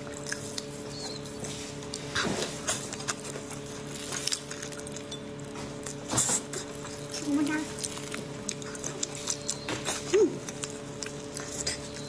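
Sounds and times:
steady background hum: 0.0 - 12.0
wet chewing and mouth sounds: 0.0 - 12.0.

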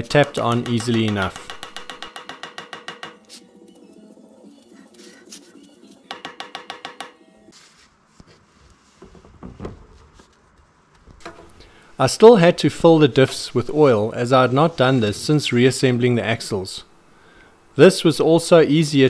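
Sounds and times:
mallet tapping metal hubcap: 0.1 - 3.2.

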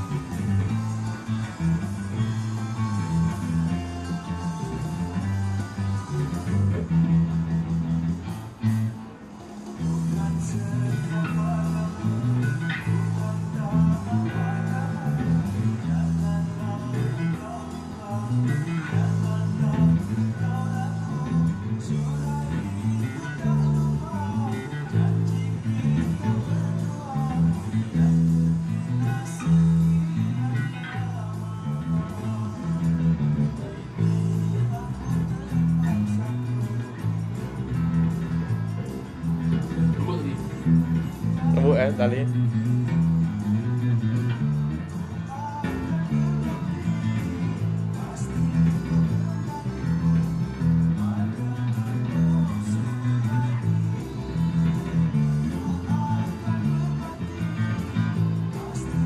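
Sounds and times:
electric bass guitar: 0.0 - 59.0.

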